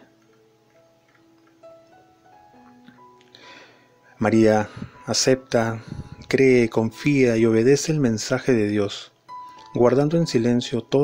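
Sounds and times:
soft instrumental music: 0.0 - 11.0.

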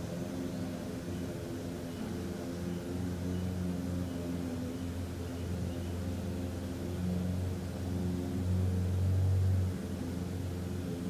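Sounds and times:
low droning hum: 0.0 - 11.0.

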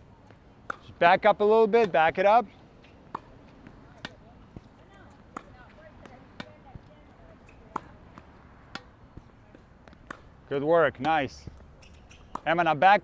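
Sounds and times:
tennis balls struck by racquets: 0.2 - 13.0.

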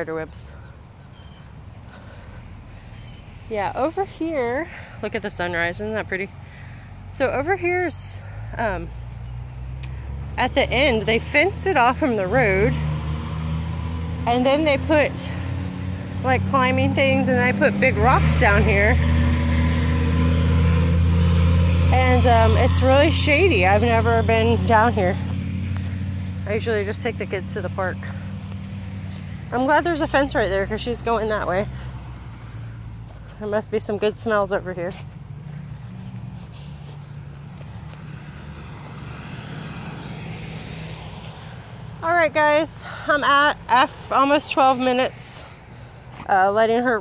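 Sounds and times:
low motor hum: 0.0 - 42.5
distant engine drone: 0.0 - 46.4.

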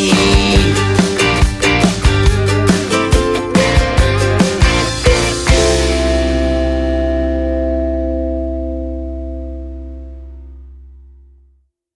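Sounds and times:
rock chord ringing on guitars: 0.0 - 10.8.

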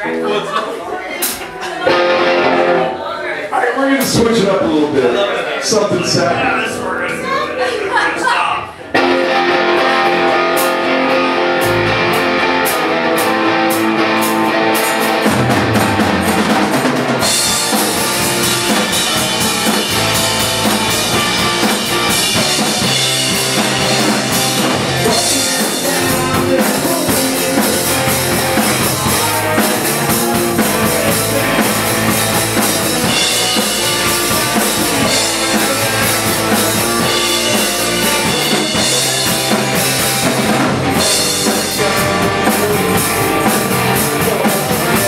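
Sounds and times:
punk rock band playing: 0.0 - 45.0
electric guitar: 1.2 - 3.2, 5.9 - 45.0.

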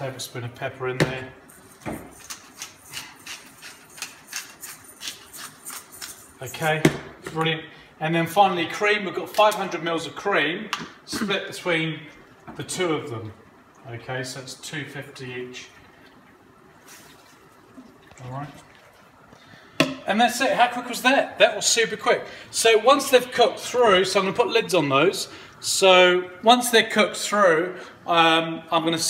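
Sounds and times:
pepper grinder grinding: 1.5 - 6.7.

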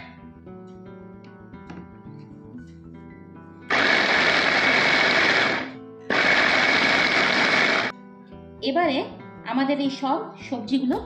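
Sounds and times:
electric food chopper running: 3.7 - 7.9.

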